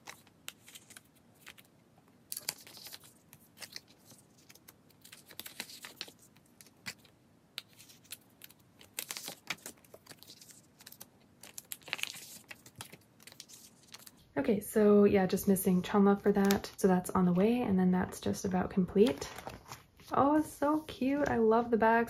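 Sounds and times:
plastic sleeves crinkling: 0.0s - 14.3s, 15.4s - 17.1s, 18.0s - 21.5s.

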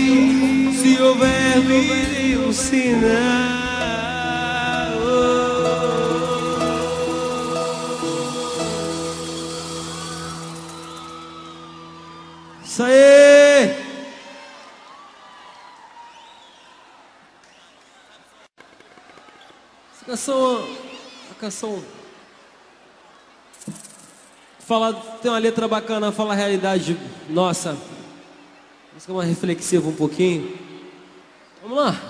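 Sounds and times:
live band holding final chord: 0.0s - 12.7s
microphone hiss: 0.0s - 15.9s, 16.8s - 32.0s.

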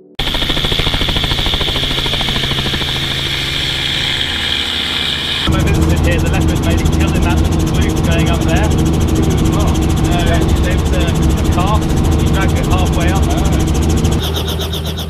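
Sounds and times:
deep rotor and engine sound: 0.0s - 15.0s
high whine: 0.0s - 15.0s
helicopter engine and rotor noise: 0.2s - 15.0s.

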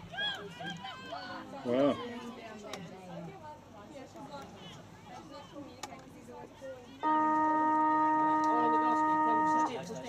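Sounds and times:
football ground siren: 7.0s - 9.8s.

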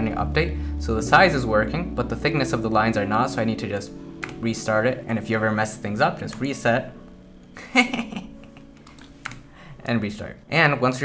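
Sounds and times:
computer keyboard key clicks: 8.8s - 9.4s.

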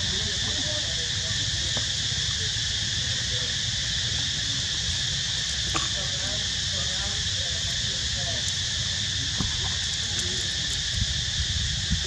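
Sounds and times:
insect chorus buzzing: 0.0s - 12.0s.

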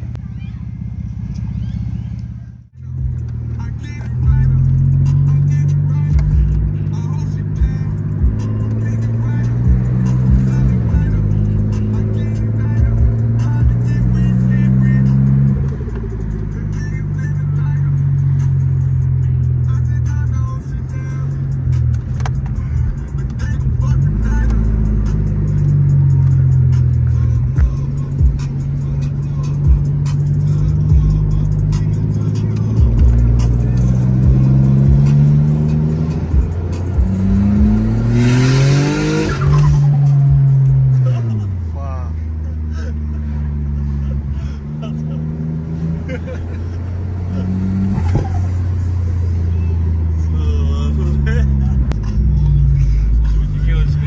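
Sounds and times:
turbocharged car engine accelerating: 0.0s - 54.0s.

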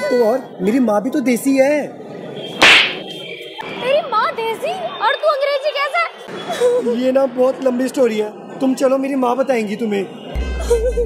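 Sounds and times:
sharp slap on cheek: 2.6s - 3.0s.

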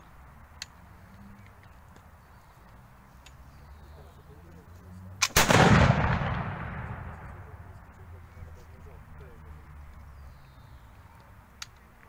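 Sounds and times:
loud musket shot with echo: 5.2s - 7.6s.

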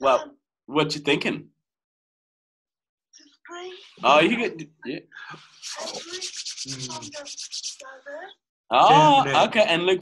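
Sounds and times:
faint voices: 3.6s - 7.9s
rapid scratchy rubbing: 5.3s - 8.3s.

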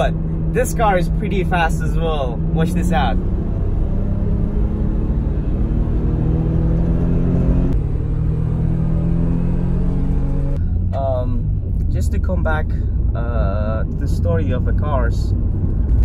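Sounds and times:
car engine accelerating hard: 0.0s - 11.8s.

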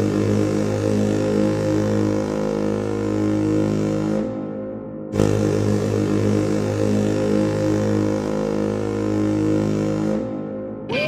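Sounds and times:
deep ship horn blast: 0.0s - 10.9s.

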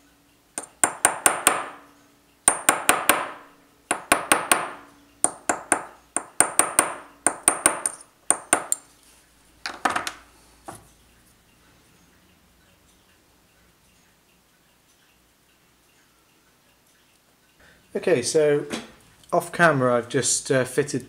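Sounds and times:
small hammer tapping metal: 0.6s - 1.9s, 2.5s - 8.9s.

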